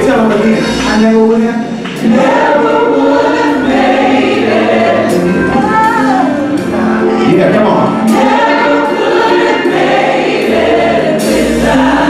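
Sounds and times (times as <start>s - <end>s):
gospel choir singing: 0.0s - 12.0s.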